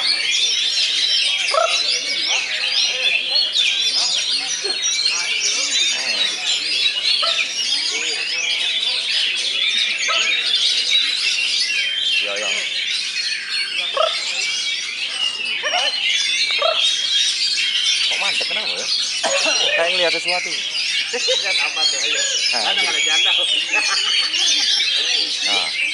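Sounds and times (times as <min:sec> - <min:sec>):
chorus of birds whistling: 0:00.0 - 0:25.9
murmur of voices: 0:00.0 - 0:25.9.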